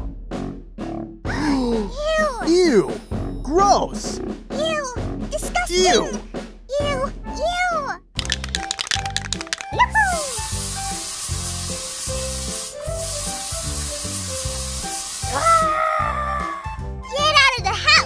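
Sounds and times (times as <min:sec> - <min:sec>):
background music: 0:00.0 - 0:18.0
spray can rattling: 0:08.2 - 0:15.7
spray can hissing: 0:08.2 - 0:15.8.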